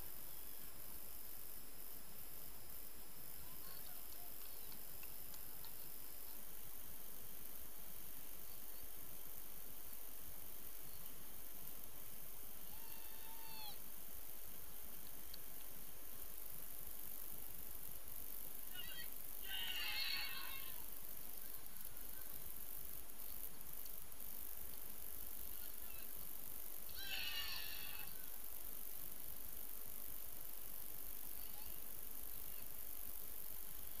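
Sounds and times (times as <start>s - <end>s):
outdoor background noise: 0.0s - 34.0s
steady background hiss: 0.0s - 34.0s
faint drawn-out call: 12.6s - 13.8s, 18.7s - 22.5s, 25.4s - 28.4s, 31.2s - 32.8s
children shouting: 18.8s - 20.8s, 26.9s - 28.2s.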